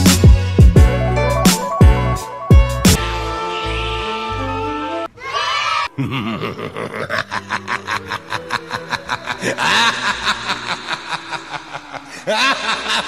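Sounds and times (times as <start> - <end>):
woman laughing: 5.9 - 13.0.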